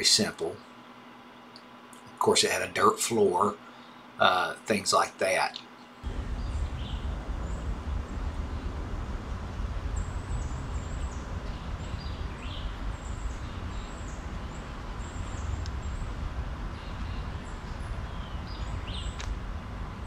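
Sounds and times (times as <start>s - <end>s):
low wind rumble on microphone: 6.0s - 20.0s
high bird chirps: 9.8s - 19.2s.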